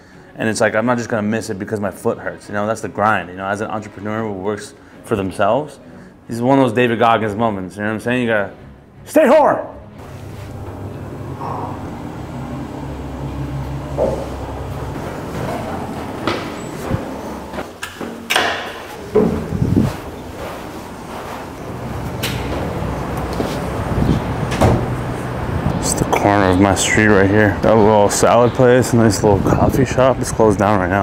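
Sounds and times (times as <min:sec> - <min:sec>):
lift car humming: 0:10.0 - 0:18.0, 0:18.8 - 0:29.6.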